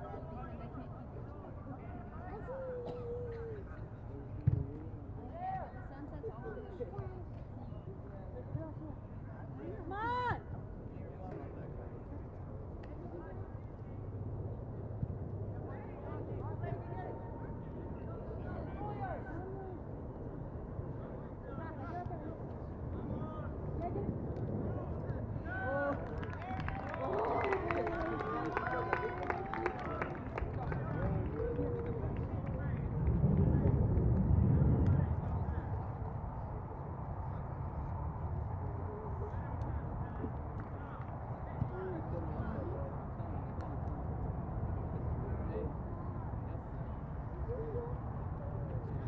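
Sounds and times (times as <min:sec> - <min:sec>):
low rumble: 0:30.9 - 0:39.3.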